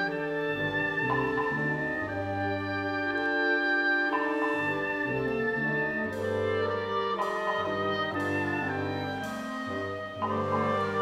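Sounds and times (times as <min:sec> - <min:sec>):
wind band playing chords: 0:00.0 - 0:11.0.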